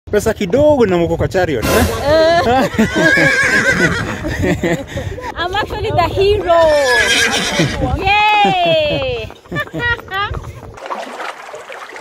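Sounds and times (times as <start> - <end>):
horse whinnying: 1.6 - 4.2, 6.4 - 8.0
people laughing: 1.6 - 6.3, 7.3 - 10.7
people talking: 5.3 - 10.4.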